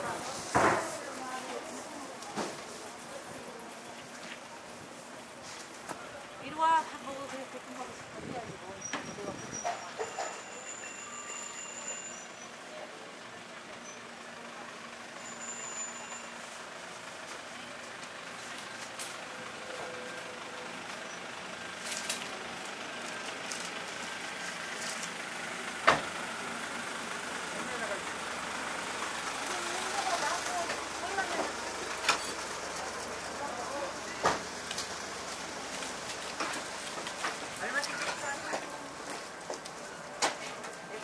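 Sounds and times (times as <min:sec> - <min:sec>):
distant voices: 0:00.0 - 0:41.0
vehicle noise: 0:00.0 - 0:41.0.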